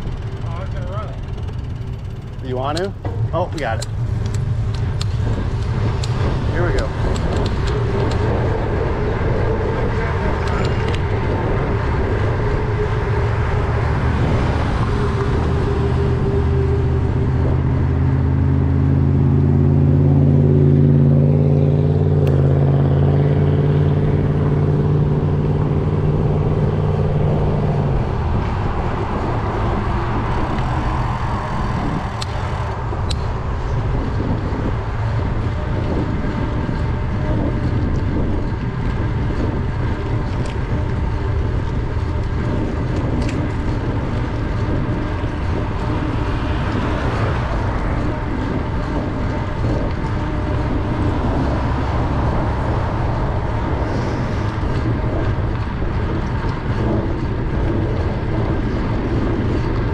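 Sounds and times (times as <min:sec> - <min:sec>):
road noise: 0:00.0 - 0:59.9
vehicle engine drone: 0:00.0 - 0:59.9
wind noise on microphone: 0:00.0 - 0:59.9.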